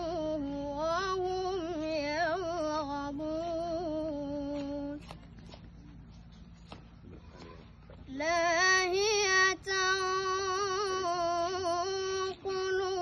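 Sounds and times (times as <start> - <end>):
boy chanting melodically: 8.1 - 13.0.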